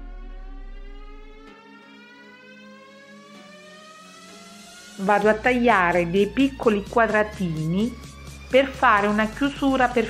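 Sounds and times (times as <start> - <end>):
steady low note: 0.0 - 1.5
synthesized tone gliding upward: 0.0 - 5.2.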